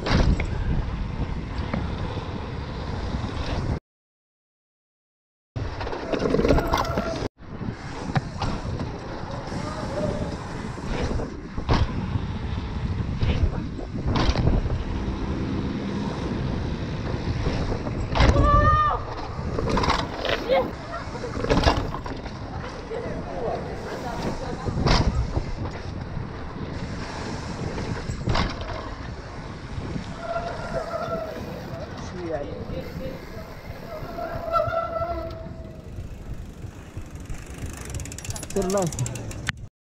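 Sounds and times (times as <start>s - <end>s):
wind rushing on microphone: 0.0s - 3.8s, 5.6s - 39.7s
bike rattling over bumps: 5.6s - 39.7s
riders shouting: 9.5s - 10.6s.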